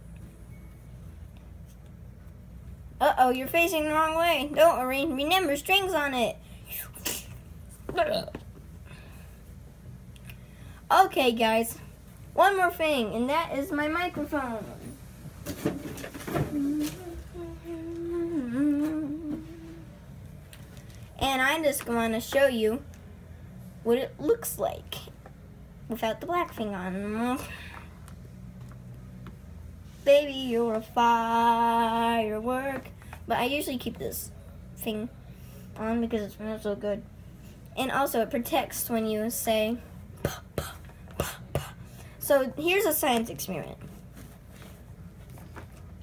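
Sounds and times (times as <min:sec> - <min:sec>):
boy humming: 0:16.3 - 0:20.0.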